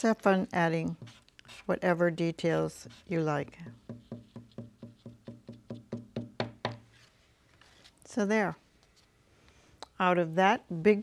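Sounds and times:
marker tapping on card: 3.8s - 6.8s.

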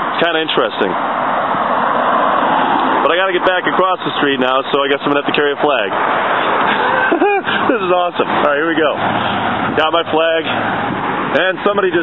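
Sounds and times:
tyres rushing on asphalt: 0.0s - 12.0s
car driving past: 1.0s - 3.7s.

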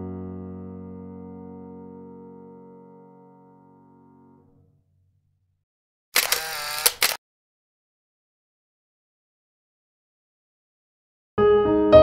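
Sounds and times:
camera shutter clicks: 6.2s - 7.2s
camera shutter whir: 6.2s - 7.2s.

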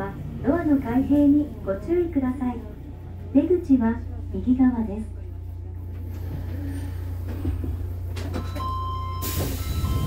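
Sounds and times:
train rumbling as it slows: 0.0s - 10.0s.

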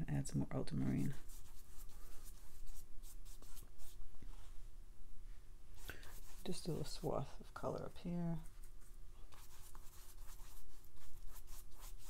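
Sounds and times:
paintbrush swishing on paper: 1.0s - 4.6s, 5.8s - 7.5s, 8.3s - 12.0s.

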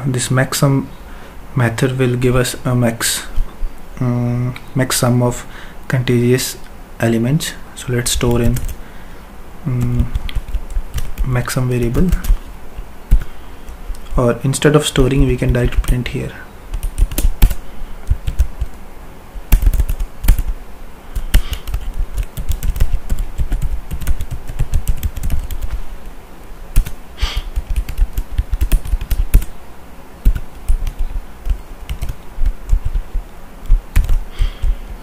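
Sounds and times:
typing on computer keyboard: 9.8s - 11.3s, 16.7s - 17.6s, 18.2s - 18.8s, 19.5s - 20.5s, 21.2s - 25.8s, 26.8s - 29.5s, 30.2s - 33.1s, 33.7s - 34.8s.

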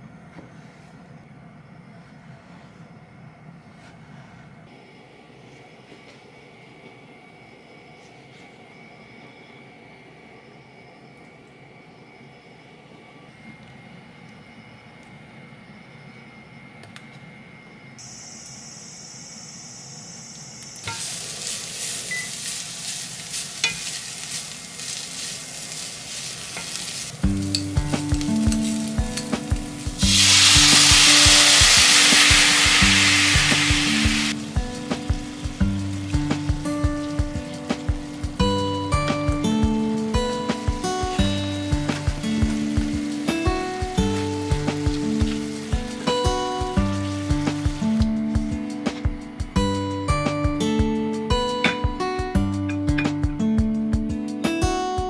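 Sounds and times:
food sizzling in a pan: 18.0s - 48.4s
background music with bass line: 27.2s - 55.0s.

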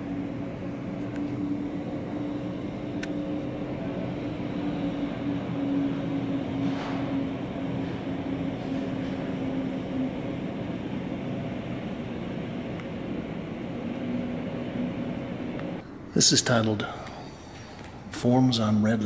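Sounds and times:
faint wavering hum: 0.0s - 19.0s
low mechanical drone: 0.0s - 19.0s.

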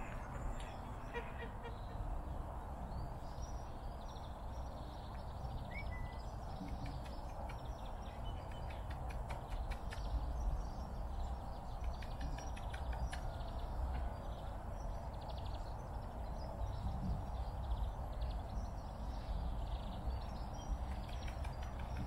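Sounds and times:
faint bird calls and chirps: 0.0s - 22.0s.

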